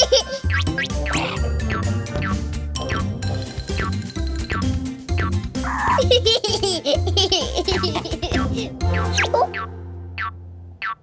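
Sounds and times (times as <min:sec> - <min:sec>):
cartoon baby giggling: 0:00.0 - 0:01.5, 0:05.6 - 0:09.7
background music: 0:00.0 - 0:10.9.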